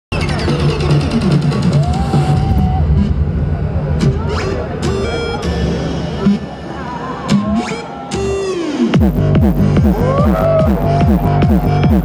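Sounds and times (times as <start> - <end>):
electronic dance music: 0.1 - 12.0
heavy bass beat: 0.1 - 12.0.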